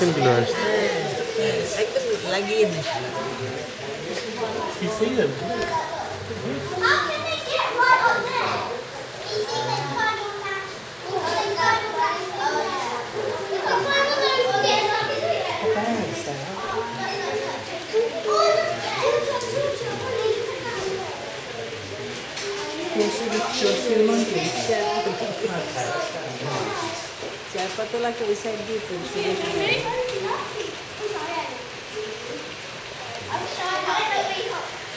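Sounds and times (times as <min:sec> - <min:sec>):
children chattering and calling: 0:00.0 - 0:34.9
people talking: 0:00.0 - 0:34.9
steady background hiss: 0:00.0 - 0:34.9.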